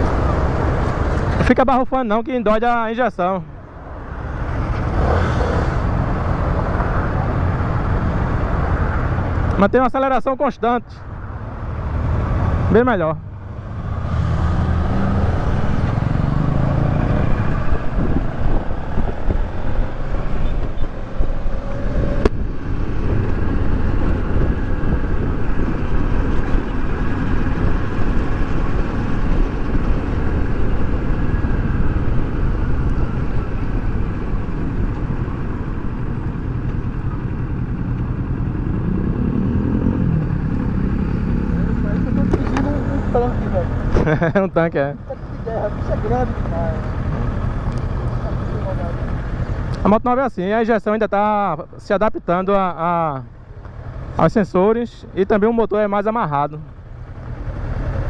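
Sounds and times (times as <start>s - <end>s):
wind rushing over microphone: 3.5s - 9.6s, 11.0s - 44.3s
motorcycle engine: 11.1s - 50.1s, 52.5s - 55.5s, 56.6s - 58.0s.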